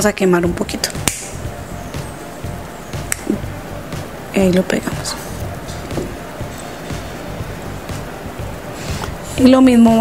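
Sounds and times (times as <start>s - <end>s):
soft background music: 0.0s - 10.0s
lighter click: 1.1s - 1.3s
gas hiss: 1.2s - 9.6s.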